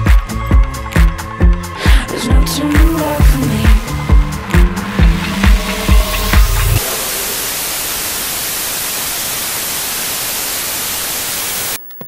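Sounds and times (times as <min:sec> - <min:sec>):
television static hiss: 0:06.8 - 0:12.0.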